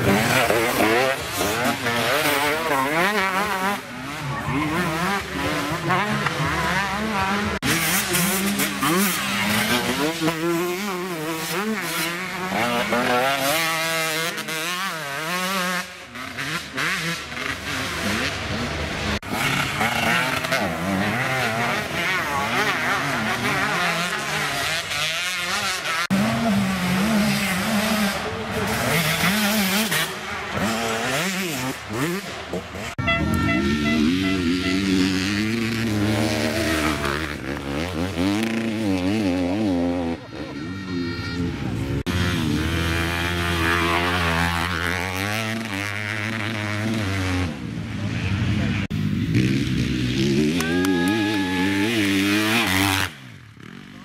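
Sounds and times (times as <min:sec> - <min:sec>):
dirt bike engines revving: 0:00.0 - 0:54.0.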